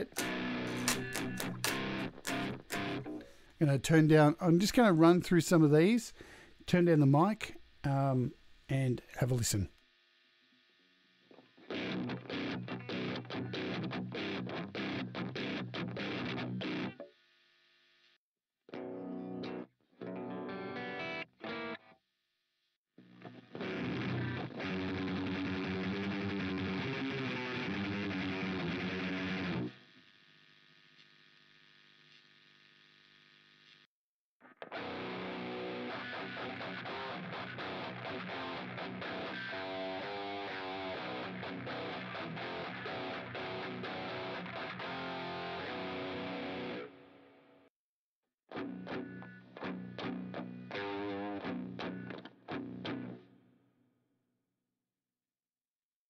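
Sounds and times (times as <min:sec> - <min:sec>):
guitar chord ringing: 0:00.0 - 0:03.4, 0:11.7 - 0:17.0, 0:18.8 - 0:21.8, 0:34.7 - 0:47.2
chugged guitar chords: 0:00.0 - 0:04.2, 0:11.6 - 0:17.1, 0:18.7 - 0:21.9, 0:23.2 - 0:29.7, 0:34.6 - 0:47.4, 0:48.5 - 0:53.4
distorted electric guitar riff: 0:00.0 - 0:09.3, 0:11.2 - 0:17.5, 0:18.7 - 0:22.0, 0:23.0 - 0:30.1, 0:34.4 - 0:47.6, 0:48.5 - 0:53.4.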